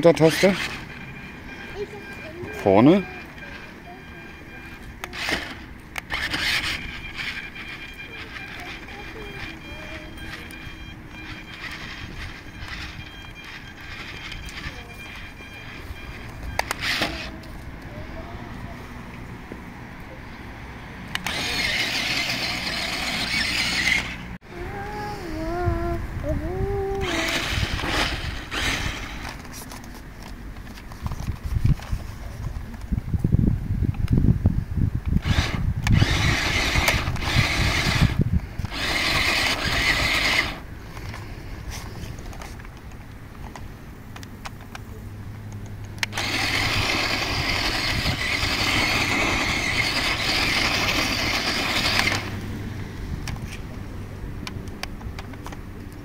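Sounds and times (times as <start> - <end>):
toy truck motors whirring: 0.0 - 17.6, 21.1 - 31.3, 35.1 - 42.6, 46.0 - 52.5
heavy low rumbling: 24.4 - 29.1.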